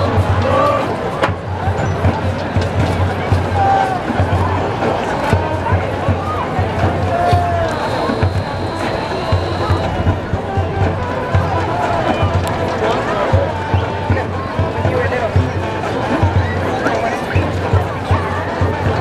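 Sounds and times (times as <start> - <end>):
low drum beat: 0.0 - 19.0
brass playing funk: 7.2 - 12.6, 14.8 - 18.4.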